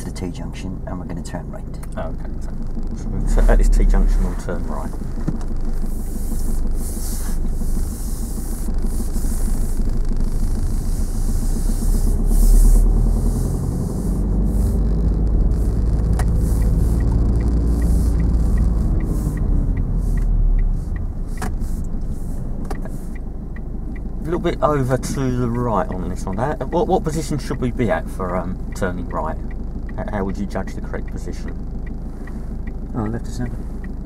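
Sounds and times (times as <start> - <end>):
car engine: 0.0 - 34.0
road noise: 0.0 - 34.0
turn indicator ticking: 0.0 - 34.0.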